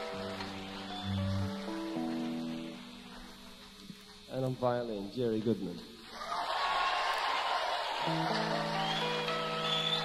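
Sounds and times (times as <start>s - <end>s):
electric organ chords: 0.0s - 4.6s, 8.0s - 10.0s.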